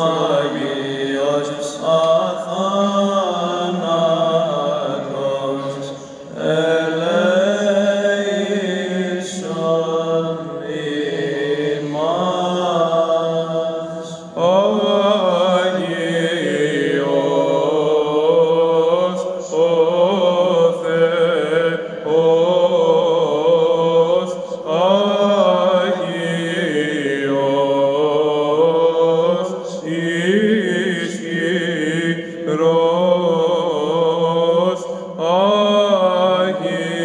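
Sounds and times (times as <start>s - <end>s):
singers breathing: 5.8s - 6.4s, 24.3s - 24.7s, 29.5s - 29.9s, 34.8s - 35.2s.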